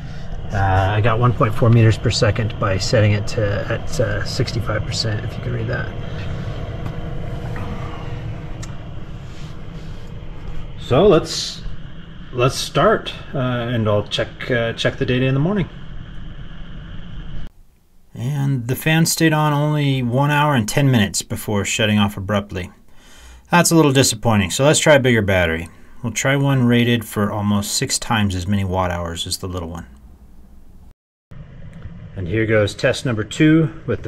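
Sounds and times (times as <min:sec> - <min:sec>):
blower fan rushing air: 0:00.0 - 0:34.0
faint low hum: 0:00.0 - 0:34.0.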